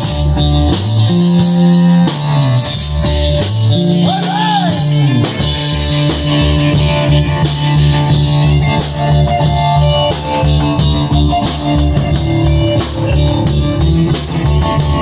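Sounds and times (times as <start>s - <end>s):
drum kit beat: 0.0s - 15.0s
electric bass: 0.0s - 15.0s
sustained keyboard chords: 0.0s - 15.0s.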